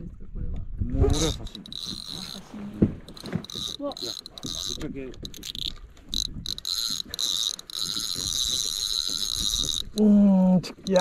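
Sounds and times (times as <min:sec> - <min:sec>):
fishing reel drag buzzing: 0:01.1 - 0:10.1.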